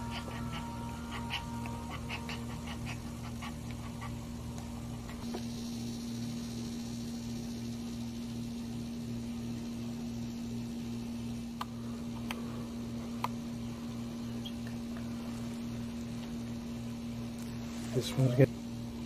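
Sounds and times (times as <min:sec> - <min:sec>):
faint high whine: 0:00.0 - 0:19.0
steady low hum: 0:00.0 - 0:19.0.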